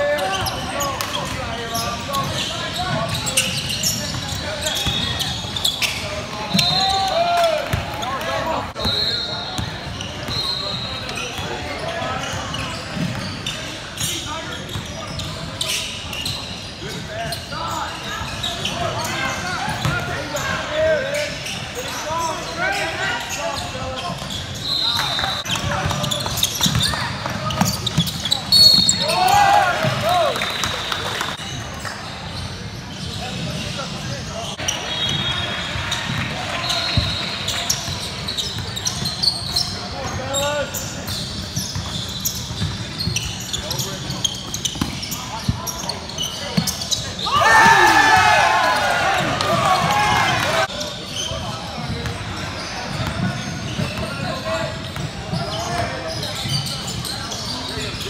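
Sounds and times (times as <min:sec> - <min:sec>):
sneaker squeaks: 0:00.0 - 0:58.0.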